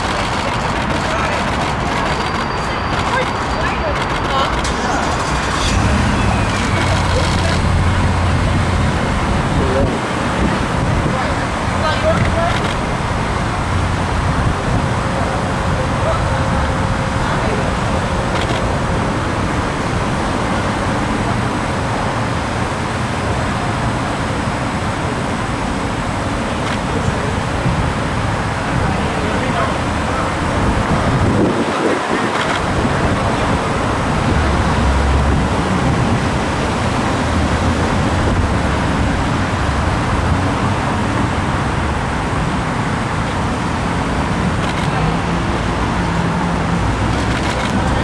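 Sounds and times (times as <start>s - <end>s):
road traffic noise: 0.0s - 48.0s.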